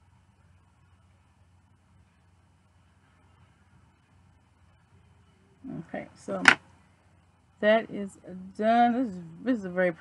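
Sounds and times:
woman speaking: 5.6 - 6.6, 7.6 - 10.0.

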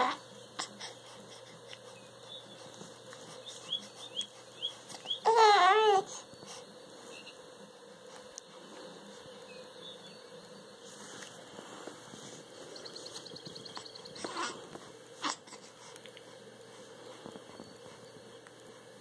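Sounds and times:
baby cooing: 5.0 - 6.2, 14.2 - 14.6, 15.2 - 15.7
faint high chirps: 12.7 - 14.3.

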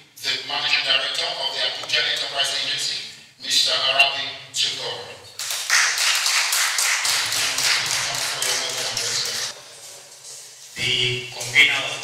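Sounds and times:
audience clapping: 5.4 - 9.6.

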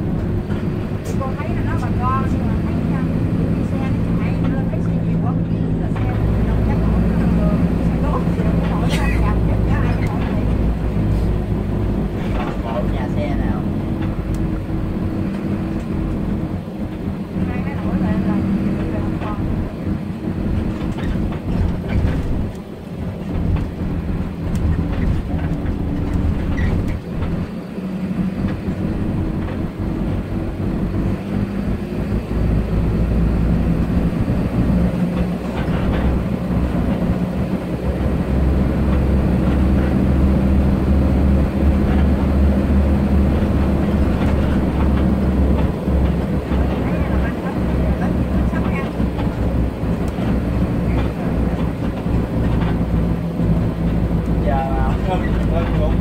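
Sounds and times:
bus engine drone: 0.0 - 56.0
road noise: 0.0 - 56.0.

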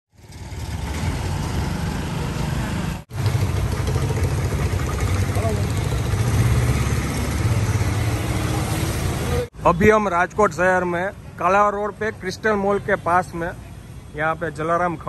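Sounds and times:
traffic engine rumble: 0.1 - 15.0.

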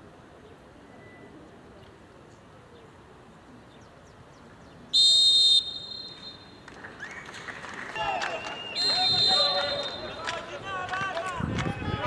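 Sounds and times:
referee's whistle blast: 5.0 - 6.6, 8.0 - 10.2
players shouting: 7.9 - 12.0.

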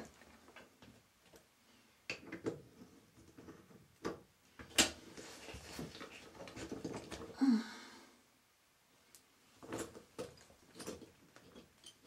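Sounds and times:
drain pipe parts clicking and knocking: 0.0 - 5.0, 5.8 - 7.4, 9.6 - 12.0.

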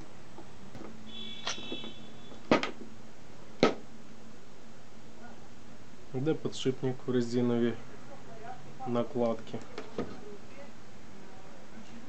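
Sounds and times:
high metallic ring: 1.1 - 2.3.

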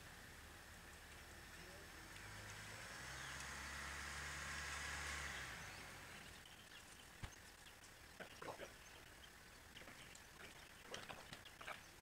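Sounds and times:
distant engine hum: 0.0 - 12.0.

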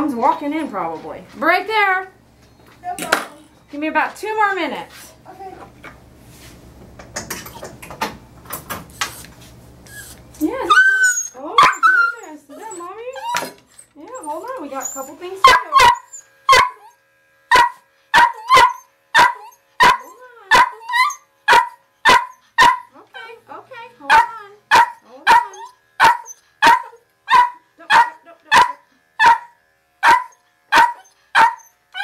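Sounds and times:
dog barking: 15.4 - 16.8, 17.5 - 22.9, 24.1 - 31.7.

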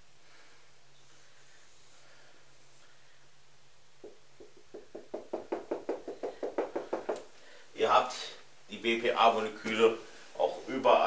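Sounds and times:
marker tapping on whiteboard: 4.0 - 7.3.

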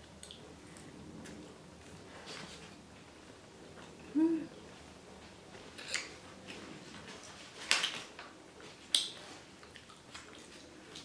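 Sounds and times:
eating clicks and smacks: 0.0 - 1.4, 7.7 - 11.0
woman humming: 4.0 - 4.6.

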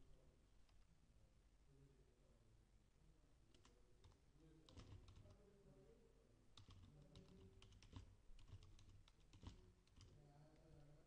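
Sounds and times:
typing on computer keyboard: 3.5 - 5.4, 6.6 - 10.3.

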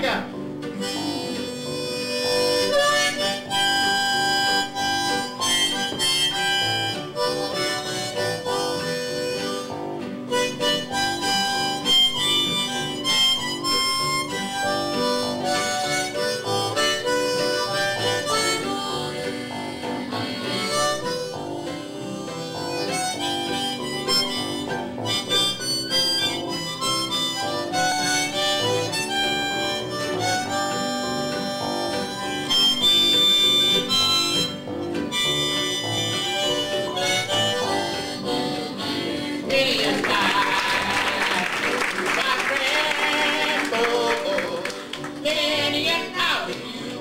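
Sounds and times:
acoustic guitars: 0.0 - 47.0
harmonica solo: 0.0 - 47.0
mandolin: 0.0 - 47.0.

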